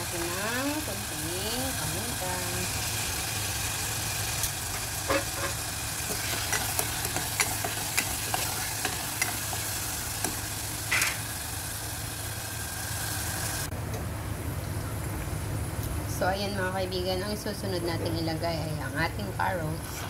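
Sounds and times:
meat sizzling in a pot: 0.0 - 13.7
spatula scraping a pot: 5.1 - 9.7.

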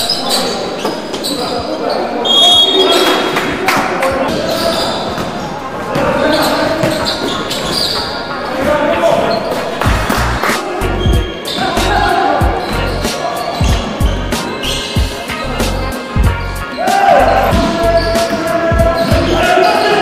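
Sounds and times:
players calling out: 0.0 - 20.0.

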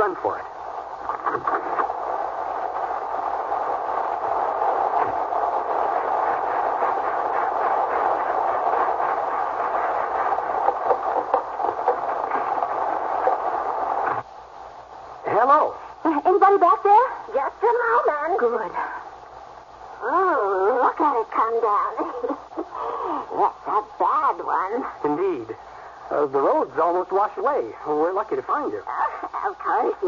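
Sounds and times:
heavy rainstorm hiss: 0.0 - 30.0.

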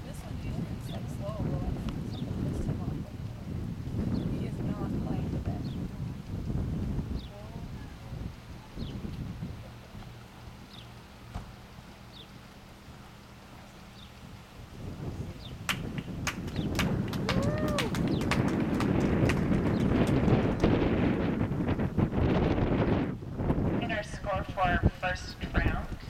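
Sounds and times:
wind buffeting microphone: 0.0 - 12.3, 12.9 - 26.0
person's voice: 23.8 - 26.0.

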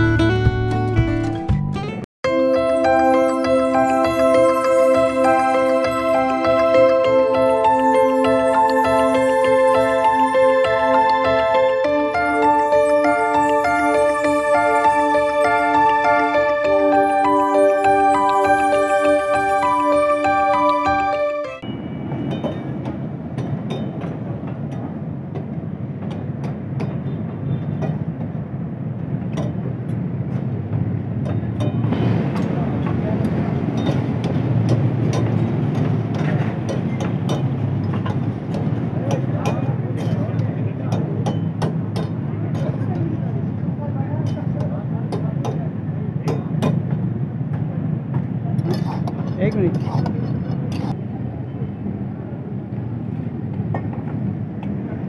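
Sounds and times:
gas burners rumbling: 21.6 - 55.0.

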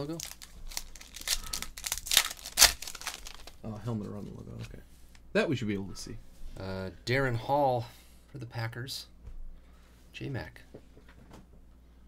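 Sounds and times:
foil wrapper tearing open: 0.0 - 3.6
foil wrapper crinkling: 0.0 - 3.7.

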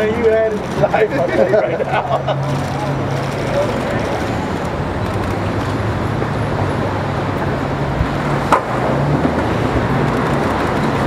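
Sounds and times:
street traffic: 0.0 - 11.0
vehicle engines idling: 0.0 - 11.0.

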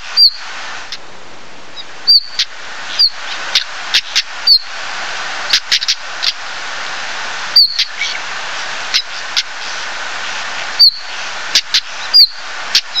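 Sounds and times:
steady hiss: 0.0 - 13.0
bird whistling descending notes: 0.2 - 0.4, 1.8 - 4.7, 7.5 - 8.2, 10.8 - 11.1, 12.0 - 13.0
bird clicking calls: 1.8 - 4.7, 5.5 - 6.4, 7.5 - 9.9, 10.6 - 13.0.

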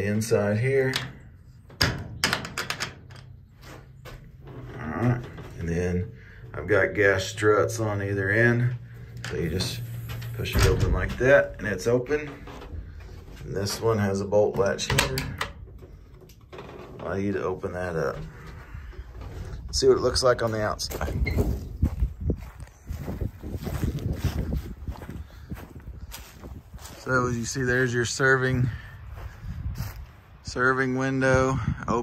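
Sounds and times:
metal bolt latch clicking: 0.8 - 3.4, 14.5 - 16.4
latch clicks and rattles: 0.8 - 5.7, 9.1 - 17.4.

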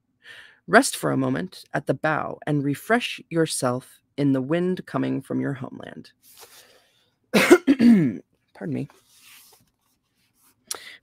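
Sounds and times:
faint breath: 0.2 - 0.6
woman coughing: 7.3 - 8.2.

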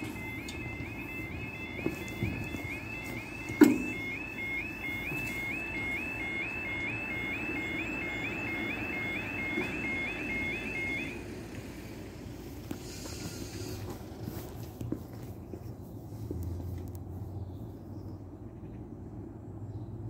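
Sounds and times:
two-tone warble warning alarm: 0.0 - 11.8.

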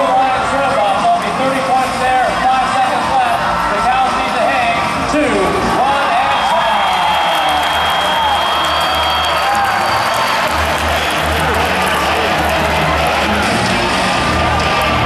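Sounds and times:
crowd cheering and shouting: 0.0 - 15.0
music with pulsing beat: 7.6 - 15.0.

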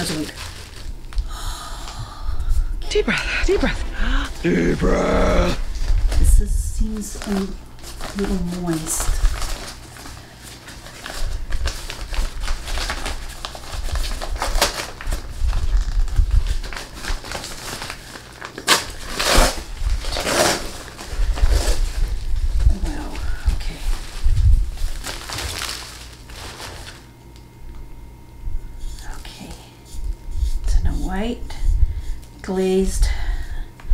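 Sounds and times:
packing paper crinkling: 0.0 - 1.4, 5.6 - 27.5.

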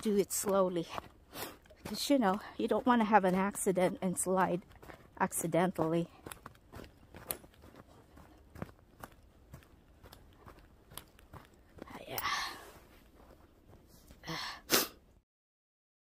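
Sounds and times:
footsteps crunching in snow: 0.0 - 14.2
person breathing: 12.2 - 12.9, 14.1 - 15.0.

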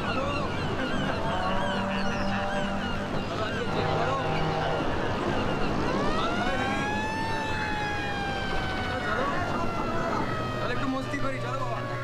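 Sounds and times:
siren winding up: 5.7 - 12.0.

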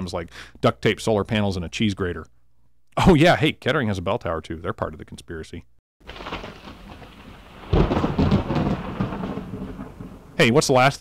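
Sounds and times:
thunderclap rumbling: 6.0 - 10.8
rain hiss: 6.1 - 10.9.

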